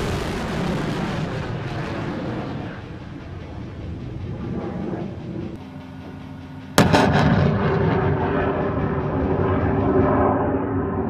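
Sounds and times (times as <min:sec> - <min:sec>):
rocket launch blast: 0:00.0 - 0:02.9, 0:06.8 - 0:11.0
low rumble: 0:00.0 - 0:11.0
rocket motor roar: 0:06.8 - 0:11.0.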